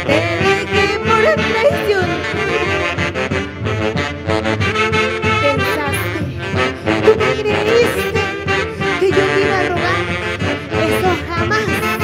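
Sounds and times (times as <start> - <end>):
saxophones playing: 0.0 - 12.0.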